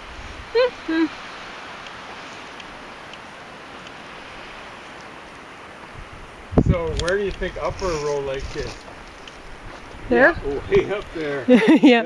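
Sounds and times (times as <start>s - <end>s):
rushing outdoor background noise: 0.0s - 12.0s
faint light ticks: 1.8s - 4.0s, 6.9s - 7.5s.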